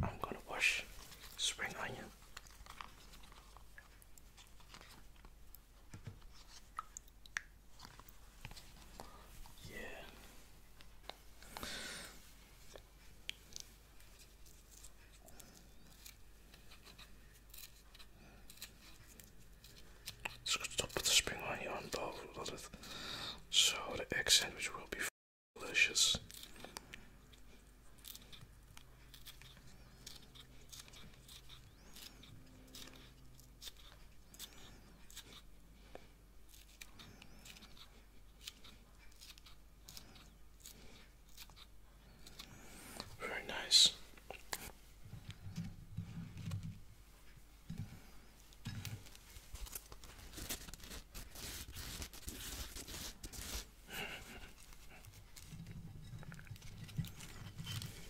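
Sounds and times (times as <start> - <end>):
close whispering: 0.0 - 2.2, 9.0 - 10.5, 20.4 - 22.8, 23.5 - 26.2, 42.3 - 44.8.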